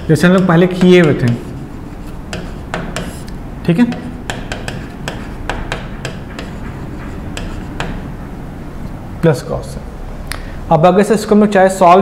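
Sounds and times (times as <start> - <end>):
chalk tapping and scraping: 0.0 - 8.2.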